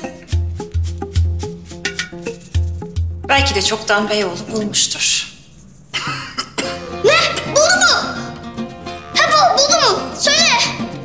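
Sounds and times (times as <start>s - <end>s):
background music: 0.0s - 11.0s
person coughing sound: 5.9s - 7.0s.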